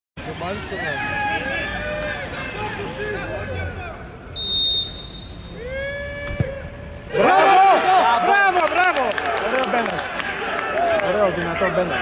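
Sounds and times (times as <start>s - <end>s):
referee's whistle: 4.4s - 5.7s.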